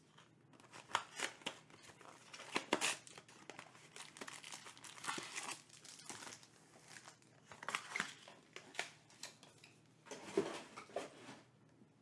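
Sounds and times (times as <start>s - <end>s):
packaging crinkling and tearing: 0.1s - 9.6s.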